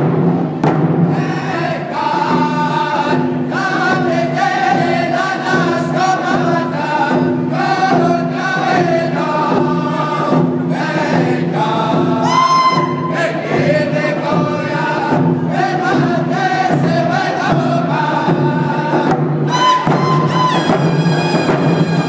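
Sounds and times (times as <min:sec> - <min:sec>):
hand drums beating: 0:00.0 - 0:22.0
men singing together: 0:01.1 - 0:21.2
high voice singing: 0:11.2 - 0:15.2.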